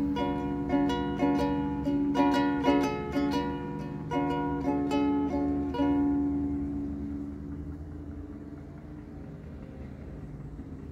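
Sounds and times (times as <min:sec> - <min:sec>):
steady low rumble: 0:00.0 - 0:10.9
ukulele chord ringing: 0:00.0 - 0:10.9.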